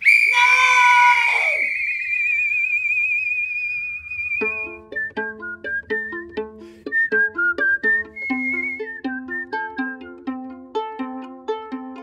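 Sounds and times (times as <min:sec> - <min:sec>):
high whistle with vibrato: 0:00.0 - 0:09.8
plucked-string tune: 0:04.4 - 0:12.0.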